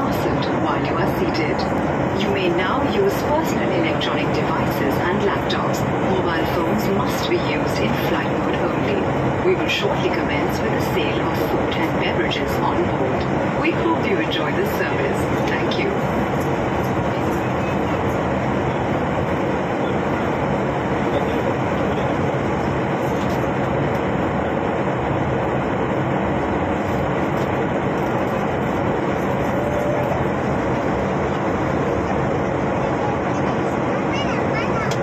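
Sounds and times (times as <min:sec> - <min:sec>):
airliner cabin engine rush: 0:00.0 - 0:35.0.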